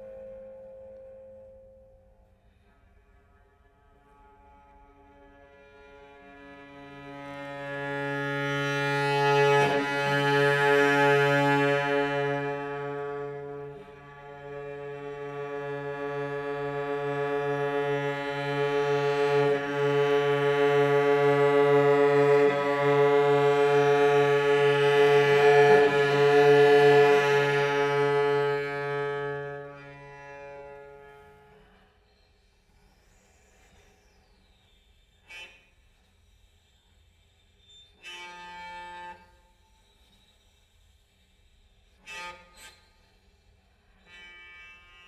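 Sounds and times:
cello bowed low tone: 0.0s - 32.2s.

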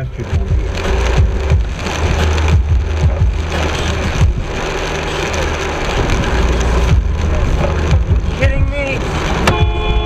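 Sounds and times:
short low thumps: 0.0s - 4.6s, 6.8s - 10.0s
low engine and road hum: 0.0s - 10.0s
tyre hiss on wet road: 0.2s - 10.0s.

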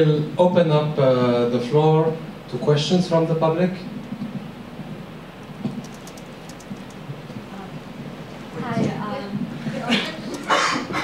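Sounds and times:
small clicks: 5.7s - 7.0s, 10.3s - 10.5s.

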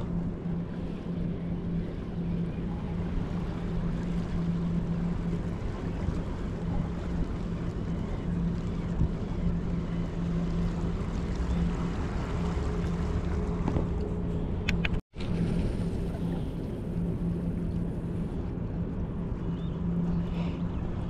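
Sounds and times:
distant boat engine hum: 0.0s - 21.0s
wind rumble on microphone: 0.0s - 21.0s.

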